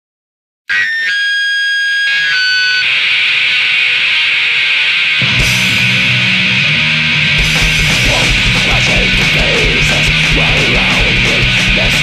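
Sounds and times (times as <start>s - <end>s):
distorted electric guitar feedback: 0.7s - 12.0s.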